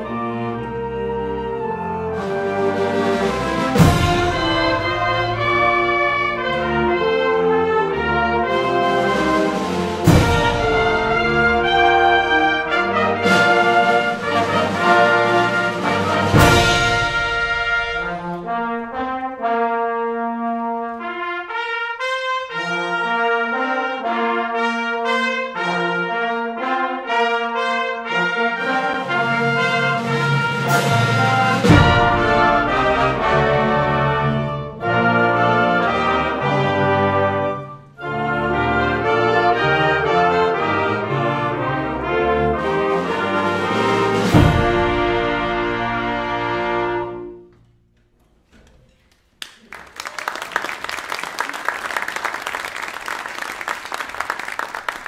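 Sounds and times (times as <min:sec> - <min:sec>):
wind ensemble playing: 0:00.0 - 0:47.6
loud percussion crashes: 0:03.4 - 0:05.8, 0:09.2 - 0:11.3, 0:15.4 - 0:18.2, 0:30.0 - 0:33.4.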